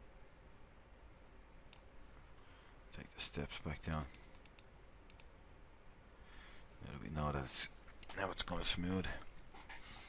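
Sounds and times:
computer mouse clicks: 0:01.7 - 0:02.3, 0:03.8 - 0:05.3.

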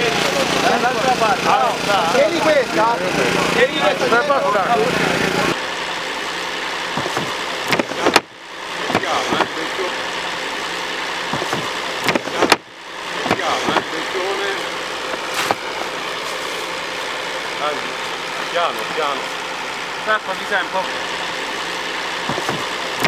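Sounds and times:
motor running: 0:00.0 - 0:23.0
sharp knocks: 0:07.0 - 0:08.3, 0:11.3 - 0:12.7, 0:22.2 - 0:22.7.

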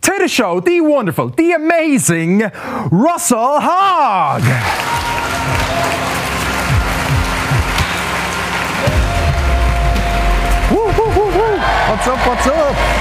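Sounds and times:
crowd applause: 0:04.4 - 0:13.0
upbeat intro music: 0:04.6 - 0:13.0
heavy bass line: 0:05.4 - 0:13.0.

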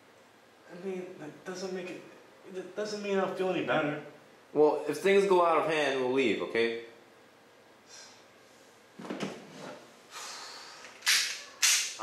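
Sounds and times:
faint breathy hiss: 0:07.8 - 0:08.8, 0:09.8 - 0:12.0
person breathing out sharply: 0:10.1 - 0:11.1.

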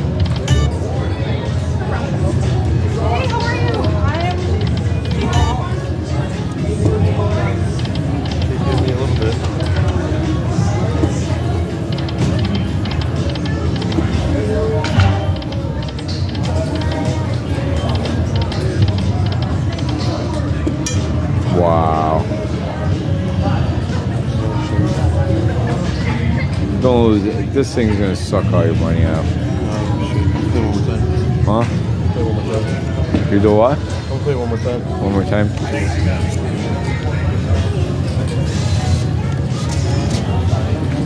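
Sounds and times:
slot machine music and jingles: 0:00.0 - 0:00.9
background chatter: 0:00.0 - 0:41.0.

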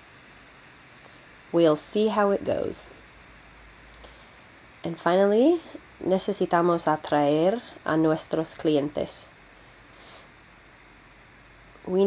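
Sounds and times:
woman speaking: 0:01.5 - 0:03.0, 0:04.8 - 0:09.4.

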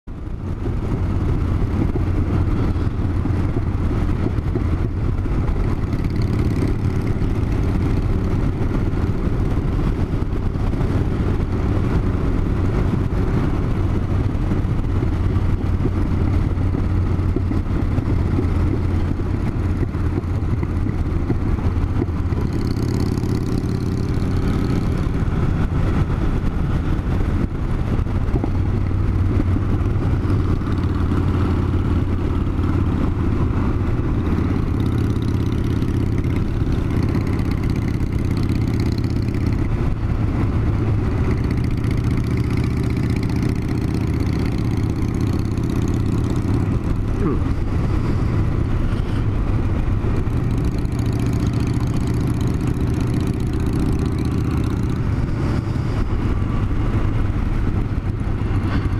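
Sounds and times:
motorcycle engine running: 0:00.0 - 0:58.9
second motorcycle engine: 0:00.1 - 0:58.9.

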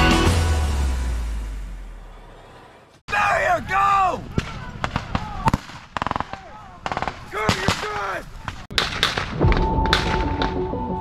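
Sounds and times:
music: 0:00.0 - 0:01.4, 0:09.3 - 0:11.0
rifle gunfire: 0:04.8 - 0:10.2.

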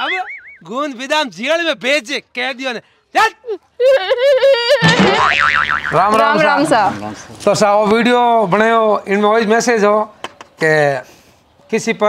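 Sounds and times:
wobbling boing warble: 0:04.8 - 0:06.4.

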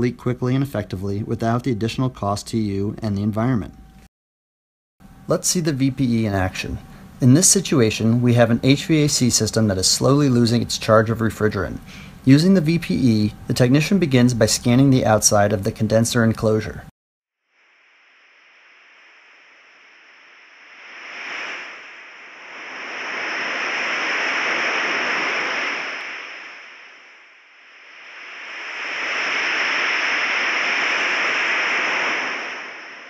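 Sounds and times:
leak detector hiss: 0:05.0 - 0:14.3, 0:17.5 - 0:33.0
thin steady high tone: 0:05.1 - 0:15.5.

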